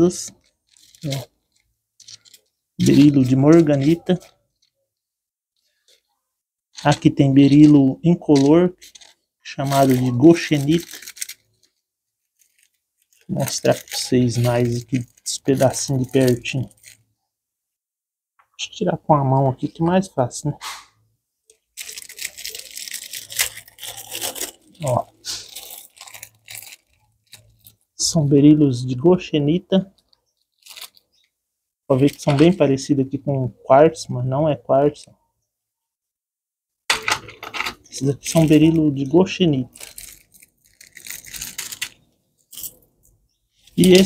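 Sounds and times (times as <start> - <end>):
plastic bag crinkling: 0.2 - 4.8, 5.6 - 17.0, 21.5 - 27.9, 29.9 - 31.3, 31.9 - 32.6, 37.7 - 44.0.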